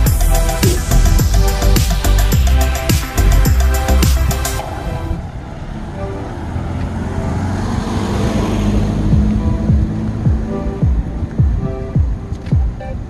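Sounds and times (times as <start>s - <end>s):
music with deep bass notes: 0.0s - 4.6s, 8.6s - 13.0s
pickup truck driving past: 0.0s - 11.2s.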